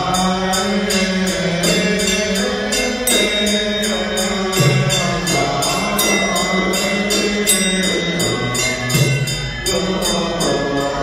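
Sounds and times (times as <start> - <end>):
monk chanting a hymn: 0.0 - 11.0
steady percussion beats: 0.0 - 11.0.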